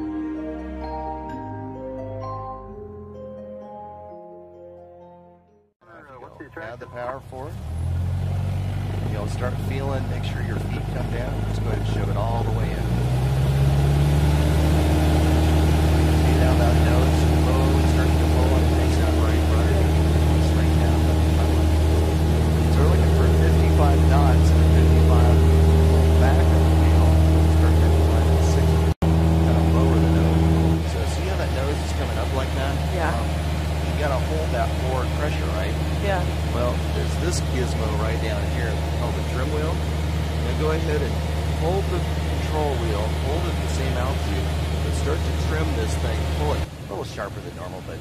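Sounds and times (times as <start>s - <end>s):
light aircraft engine drone: 5.8s - 48.0s.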